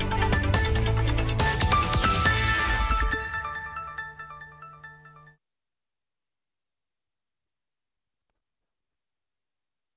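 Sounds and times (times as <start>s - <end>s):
tv news theme music: 0.0s - 5.4s.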